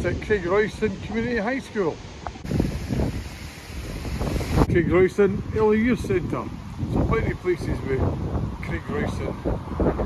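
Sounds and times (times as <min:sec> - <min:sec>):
wind buffeting microphone: 0:00.0 - 0:01.4, 0:02.1 - 0:10.0.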